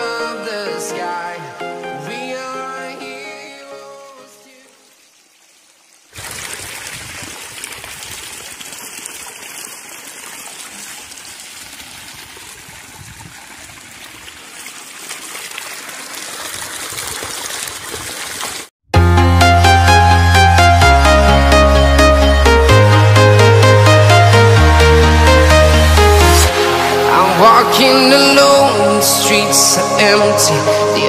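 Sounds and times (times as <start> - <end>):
background music: 0.0 - 4.6, 18.9 - 31.0
water pouring into a tank: 6.1 - 18.7.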